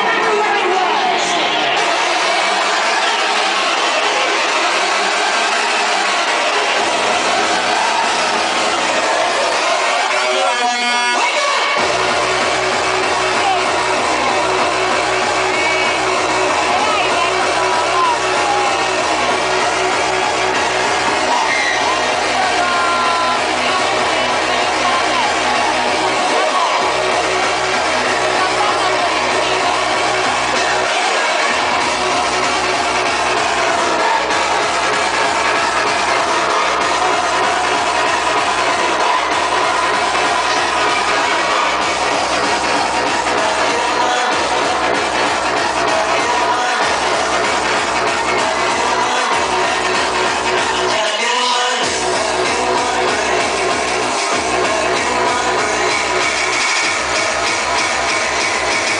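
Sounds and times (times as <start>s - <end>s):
hardcore techno over sound system: 0.0s - 58.9s.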